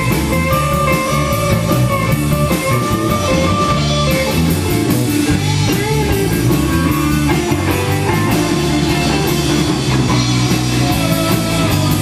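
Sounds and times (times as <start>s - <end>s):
rock band with guitar and drums: 0.0s - 12.0s.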